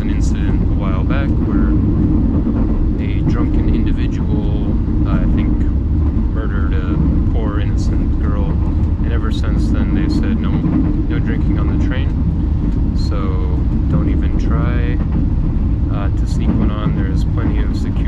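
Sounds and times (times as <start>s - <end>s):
people talking: 0.0s - 1.8s, 3.0s - 5.7s, 6.4s - 12.2s, 13.0s - 15.0s, 15.9s - 18.0s
train carriage rumble: 0.0s - 18.0s.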